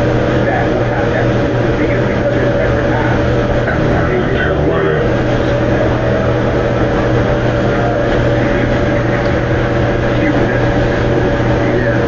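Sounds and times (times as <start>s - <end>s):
mechanical drone: 0.0s - 12.0s.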